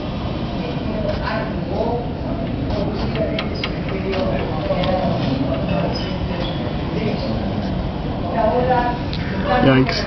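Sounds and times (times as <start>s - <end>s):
indistinct voices talking: 1.5s - 7.5s.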